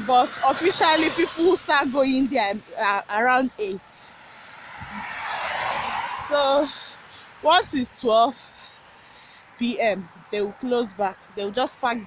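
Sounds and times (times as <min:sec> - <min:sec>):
passing vehicle rushing: 0:00.0 - 0:02.3, 0:03.8 - 0:09.6.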